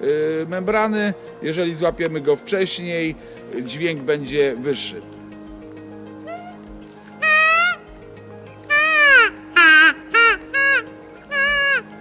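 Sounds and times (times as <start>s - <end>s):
predator call cries: 6.2s - 7.9s, 8.7s - 11.9s.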